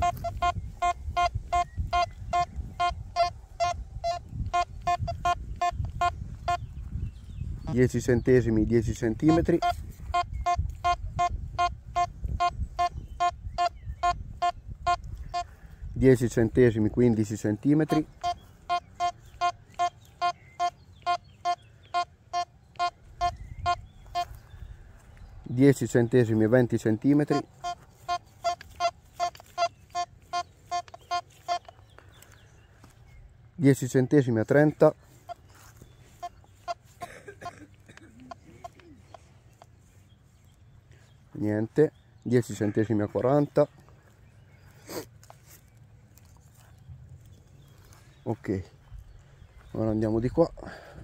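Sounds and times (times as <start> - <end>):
metal detector short beeps: 0.0 - 6.7, 9.2 - 15.5, 17.9 - 24.3, 27.2 - 31.8.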